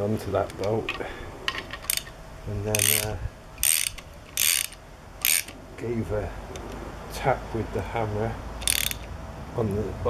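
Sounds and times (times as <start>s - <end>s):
socket ratchet clicking: 1.7s - 5.6s, 8.6s - 9.1s.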